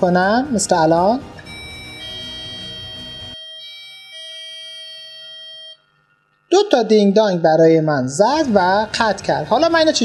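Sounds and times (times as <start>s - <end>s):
electronic doorbell chime: 0.3s - 5.8s.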